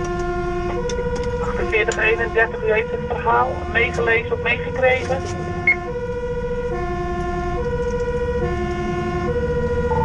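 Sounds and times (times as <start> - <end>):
truck engine running: 0.0 - 10.0
two-tone siren: 0.0 - 10.0.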